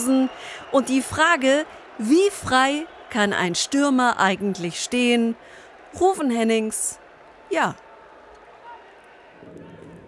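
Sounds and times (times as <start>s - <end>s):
faint stadium ambience: 0.0s - 10.0s.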